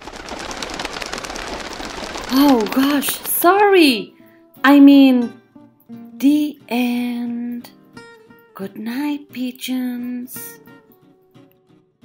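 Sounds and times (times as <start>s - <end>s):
pigeons flapping wings: 0.0s - 3.8s.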